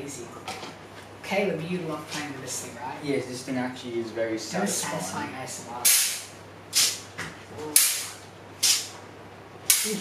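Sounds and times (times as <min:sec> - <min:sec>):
short bursts of hiss: 0:05.9 - 0:07.0, 0:07.8 - 0:08.9.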